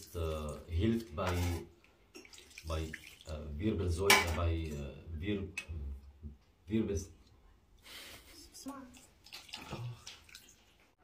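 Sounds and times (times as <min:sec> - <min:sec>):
liquid splashing and trickling: 0:00.0 - 0:03.7, 0:08.6 - 0:11.0.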